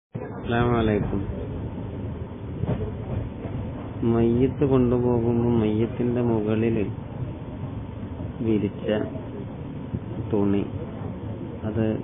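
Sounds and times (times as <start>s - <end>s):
steady low rumbling: 0.2s - 12.0s.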